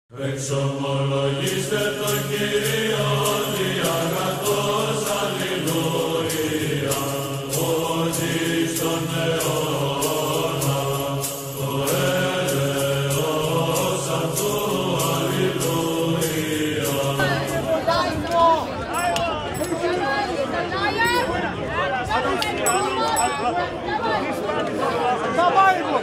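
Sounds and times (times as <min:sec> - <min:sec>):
voices chanting in unison: 0:00.1 - 0:26.0
steady ticking beat: 0:01.4 - 0:18.0
voices talking outdoors: 0:01.4 - 0:26.0.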